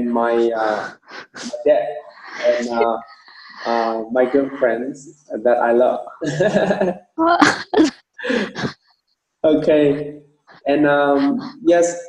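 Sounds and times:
person's voice in short bursts: 2.3 - 4.9, 10.7 - 11.6.

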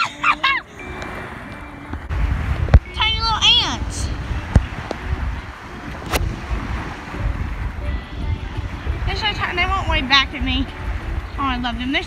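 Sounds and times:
wind buffeting microphone: 0.0 - 12.0
low rumble: 0.8 - 12.0.

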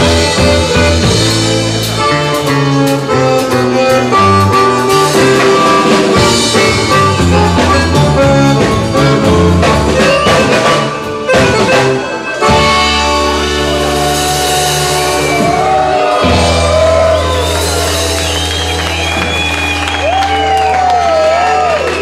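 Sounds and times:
button accordion melody: 0.0 - 15.6
band with drum kit: 0.0 - 22.0.

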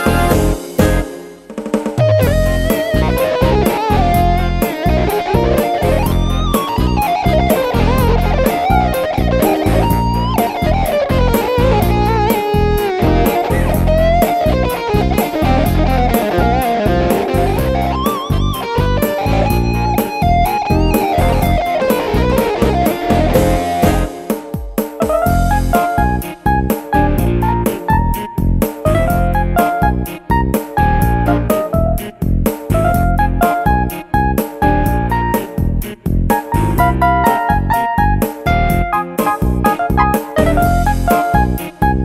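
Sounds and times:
drum and bass beat: 0.0 - 42.0
electric guitar-like lead melody: 0.0 - 42.0.

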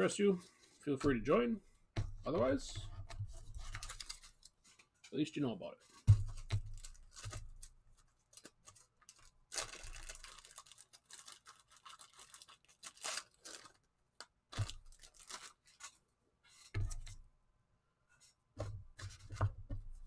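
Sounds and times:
knocks and thuds: 6.1 - 6.8.

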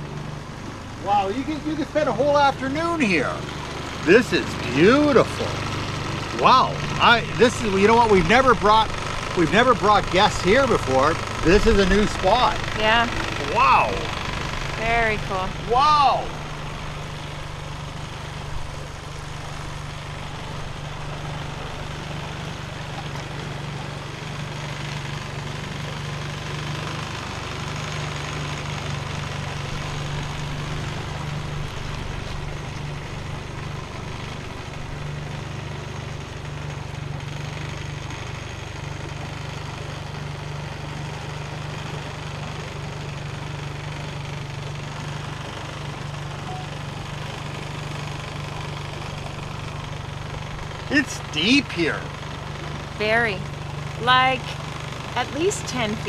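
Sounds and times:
outboard motor running: 0.0 - 56.0.

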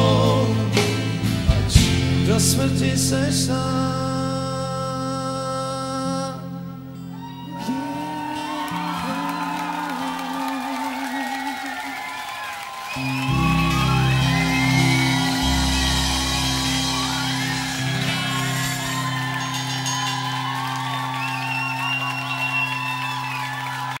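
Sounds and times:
live band playing instrumental: 0.0 - 2.8, 12.8 - 24.0.

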